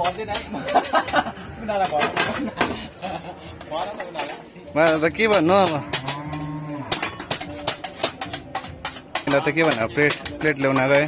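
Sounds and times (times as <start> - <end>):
plates clinking and knocking: 0.0 - 11.0
cow mooing: 5.7 - 7.4.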